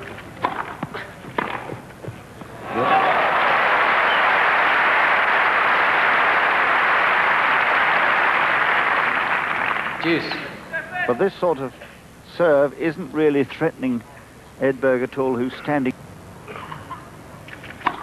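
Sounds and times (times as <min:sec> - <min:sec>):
tennis ball struck by rackets: 0:00.4 - 0:01.8
crowd applauding loudly: 0:02.6 - 0:10.2.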